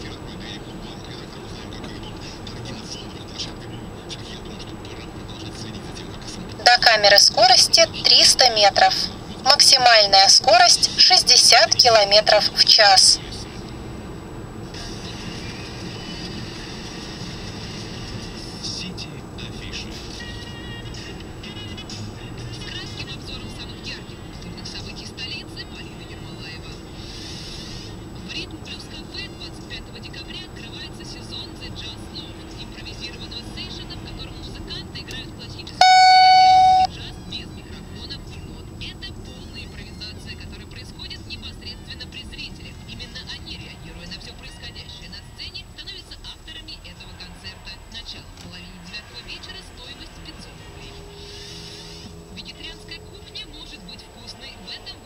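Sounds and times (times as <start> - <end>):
car road noise: 0.0 - 55.0
radio playing quietly: 0.0 - 55.0
loud electronic beep: 35.8 - 36.9.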